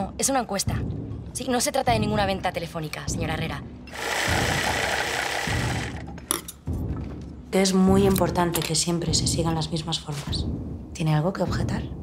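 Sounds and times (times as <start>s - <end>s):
sewing machine running: 3.9s - 6.0s.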